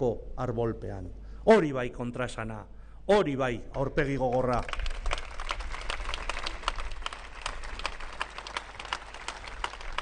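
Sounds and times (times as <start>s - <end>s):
speech: 0.0s - 4.7s
audience applauding: 4.4s - 10.0s.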